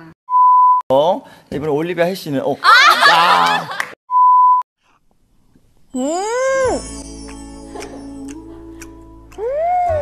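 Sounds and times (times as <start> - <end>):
electronic test tone beep: 0.3 - 0.8, 4.1 - 4.6.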